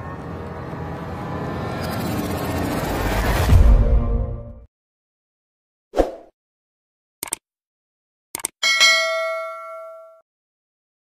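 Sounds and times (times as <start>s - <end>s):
notification bell ding: 8.6s - 10.2s.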